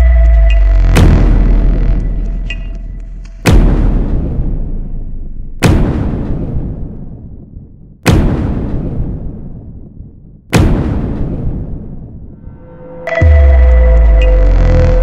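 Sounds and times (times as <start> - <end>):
deep cinematic booms: 0.0 - 15.0
long rumble: 12.4 - 15.0.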